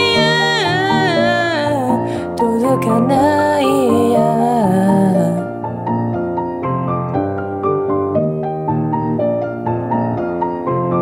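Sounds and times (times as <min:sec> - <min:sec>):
pop piano melody over chords: 0:00.0 - 0:11.0.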